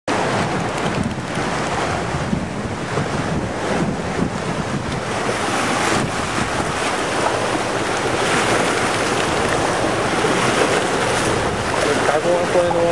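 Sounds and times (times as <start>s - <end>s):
small waves lapping against dock: 0.1s - 12.9s
wind buffeting microphone: 0.1s - 12.9s.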